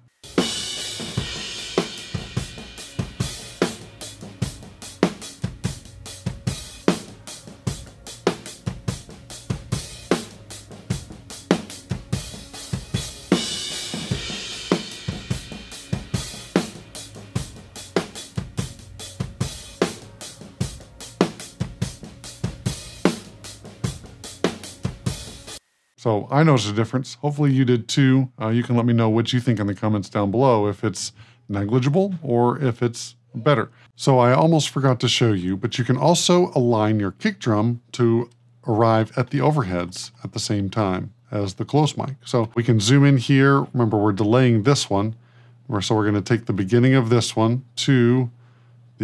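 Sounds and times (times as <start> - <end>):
cymbals and hi-hat: 0.0 - 25.6.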